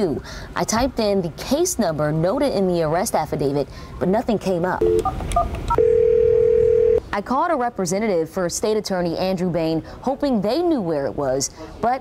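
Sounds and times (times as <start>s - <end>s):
steady phone line tone: 5.7s - 7.0s.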